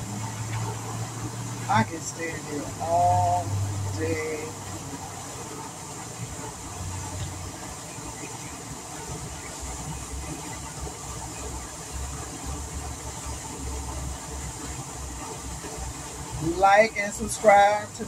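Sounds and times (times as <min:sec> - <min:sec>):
fountain spray splashing into lake: 0:00.0 - 0:18.0.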